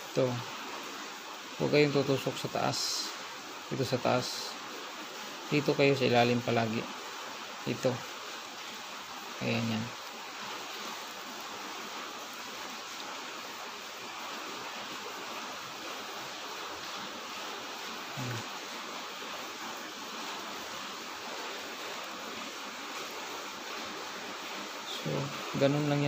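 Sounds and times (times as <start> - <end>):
background hiss: 0.0 - 26.0
low voice hum: 18.2 - 18.5.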